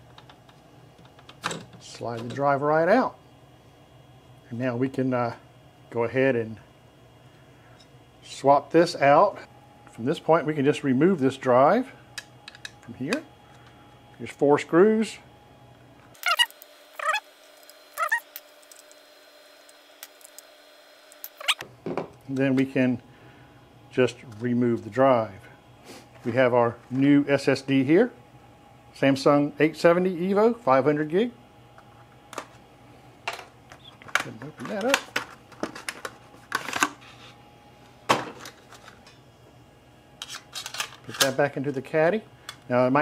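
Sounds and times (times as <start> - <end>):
screws squeaking: 16.2 - 17.2, 17.9 - 18.3, 21.2 - 21.6.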